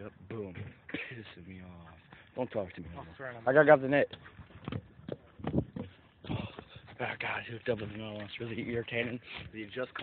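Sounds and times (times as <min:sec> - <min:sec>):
hurried footsteps: 0:01.7 - 0:10.0.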